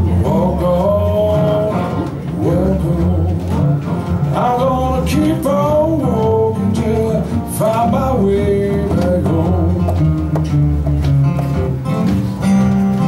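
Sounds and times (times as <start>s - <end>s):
resonator bass line: 0.0s - 13.0s
sliding resonator guitar melody: 0.0s - 13.0s.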